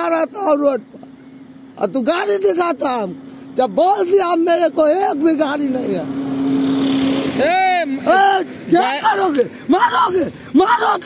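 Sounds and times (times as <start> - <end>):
passing vehicle rushing: 4.6 - 10.6
man crying out: 7.6 - 11.0.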